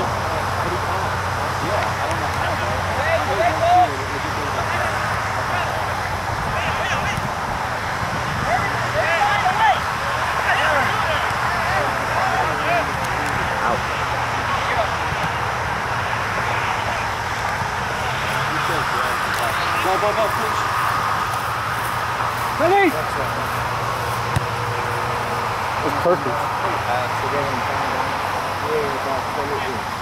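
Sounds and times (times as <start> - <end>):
distant voices shouting: 0.0 - 30.0.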